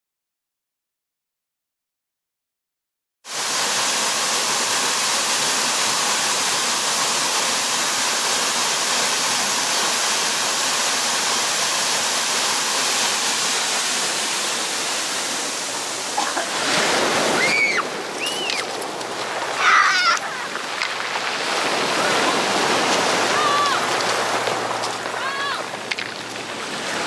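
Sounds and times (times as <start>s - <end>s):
waterfall rushing: 3.3s - 27.0s.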